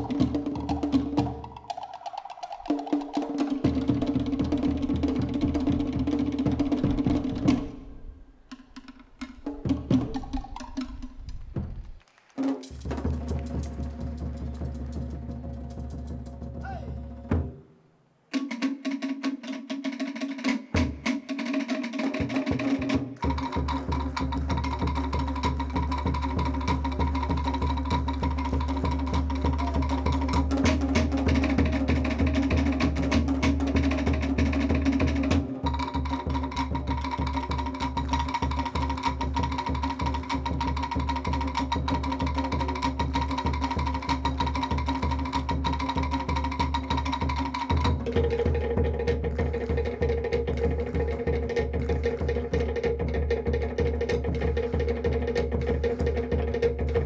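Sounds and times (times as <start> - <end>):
drums: 0.0 - 57.0.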